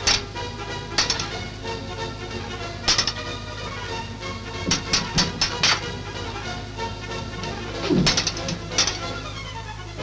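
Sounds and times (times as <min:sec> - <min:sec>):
background music: 0:00.0 - 0:10.0
sword blades clashing: 0:01.0 - 0:01.4, 0:04.7 - 0:05.9, 0:07.8 - 0:09.2.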